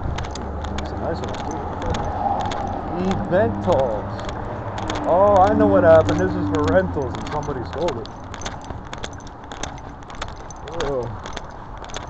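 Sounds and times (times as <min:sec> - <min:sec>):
low street noise: 0:00.0 - 0:12.0.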